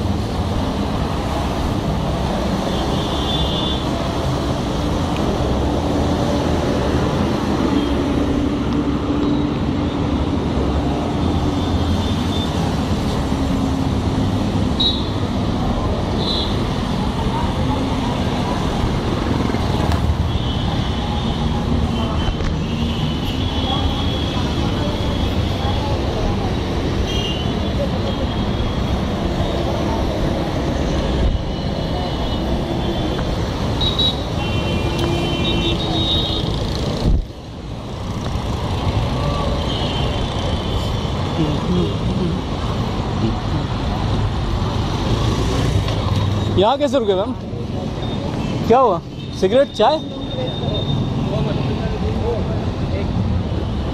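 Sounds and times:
road traffic: 0.0s - 53.9s.

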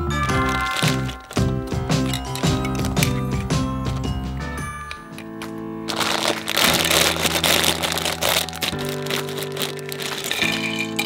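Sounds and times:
background music with held notes: 0.0s - 11.0s
small plastic parts tipped out: 0.3s - 4.1s, 4.9s - 11.0s
plastic bag crinkling: 0.3s - 4.2s, 4.8s - 11.0s.

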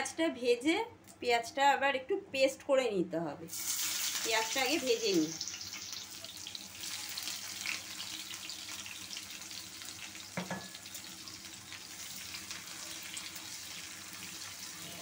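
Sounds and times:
onions sizzling in hot oil: 3.5s - 15.0s.

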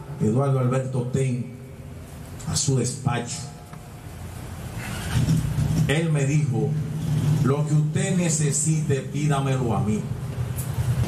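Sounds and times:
vehicle engine running: 4.1s - 9.3s.

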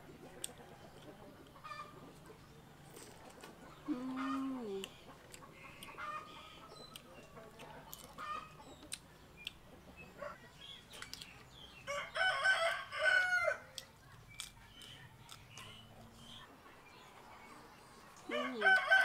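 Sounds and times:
rooster crowing: 11.9s - 13.6s, 18.3s - 19.0s.

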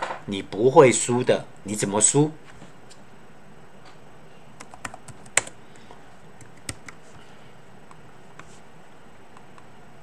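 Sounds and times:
keyboard keystrokes: 4.6s - 5.6s, 6.4s - 7.0s.

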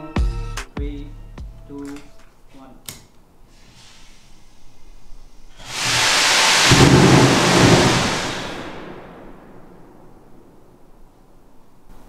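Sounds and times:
rocket motor rushing roar: 5.5s - 9.6s.

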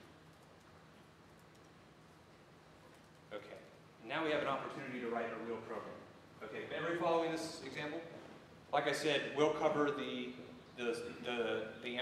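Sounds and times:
computer keyboard typing: 0.2s - 0.7s, 1.3s - 1.8s.

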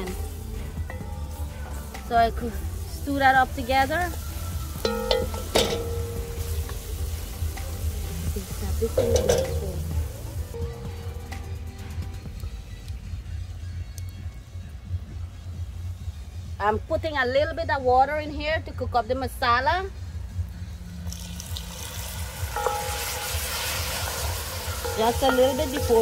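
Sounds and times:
vegetables sizzling in oil: 0.0s - 10.6s, 21.1s - 26.0s
spoon knocking on pot: 4.8s - 6.4s, 8.9s - 9.8s, 22.6s - 23.9s, 24.8s - 26.0s.

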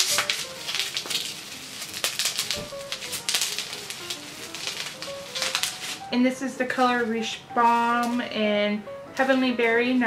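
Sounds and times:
faint musical notes: 0.0s - 10.0s
plastic wrapping crinkling: 0.0s - 10.0s.

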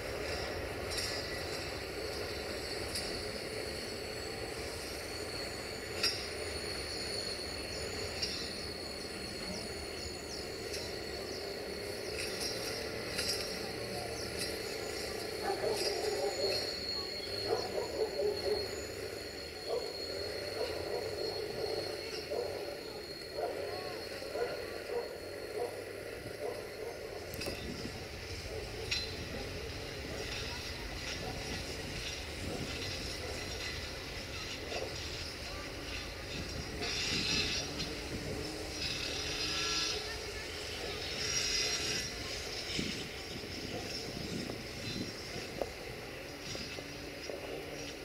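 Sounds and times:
metallic squealing from wagons: 0.0s - 48.0s
train wheels clattering on rails: 0.0s - 48.0s.

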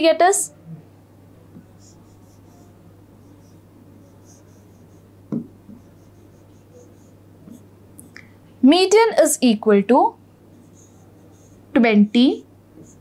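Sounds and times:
low steady hum: 0.0s - 13.0s
stylus scratching and tapping screen: 1.5s - 7.7s, 10.5s - 13.0s.

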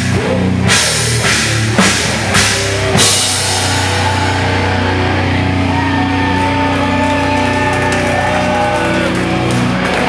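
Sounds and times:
distorted metal guitars and bass: 0.0s - 10.0s.

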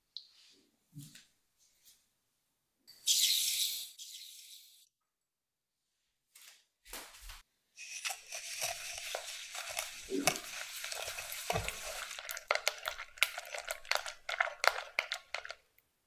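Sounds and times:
whisk swishing in a bowl: 7.8s - 15.6s.

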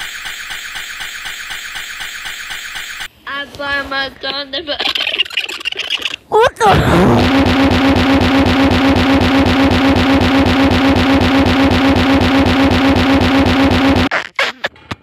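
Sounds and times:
computer audio buzzing stutter: 6.7s - 14.1s.

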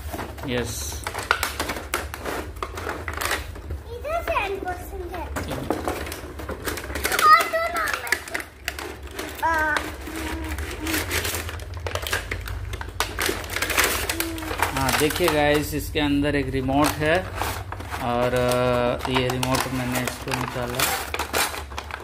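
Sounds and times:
packaging scrapes and rustles: 0.0s - 15.8s, 16.4s - 22.0s
young child's voice: 3.8s - 5.6s, 7.0s - 11.4s, 13.9s - 14.8s.

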